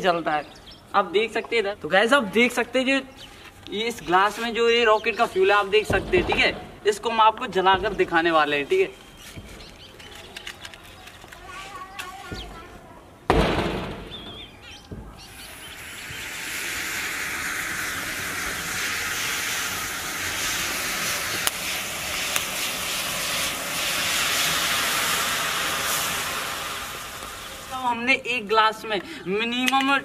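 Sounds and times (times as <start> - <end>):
sharp pops: 13.3 - 28.0
rocket fuel burning with hiss: 13.3 - 29.2
match striking and flaring: 15.3 - 27.9.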